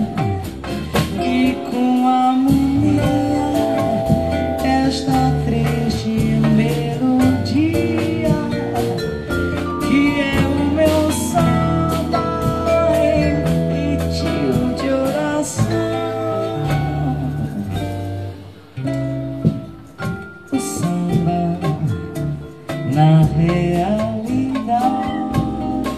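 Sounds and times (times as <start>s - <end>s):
person singing: 0.0s - 18.4s, 20.5s - 25.9s
bossa nova band playing: 0.0s - 25.9s.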